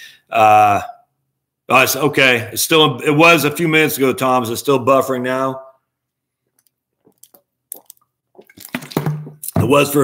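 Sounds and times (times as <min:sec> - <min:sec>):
man gulping a drink: 0:06.5 - 0:09.6.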